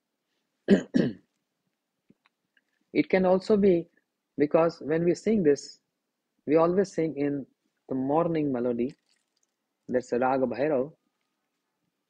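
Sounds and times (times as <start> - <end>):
man clearing his throat: 0.7 - 1.3.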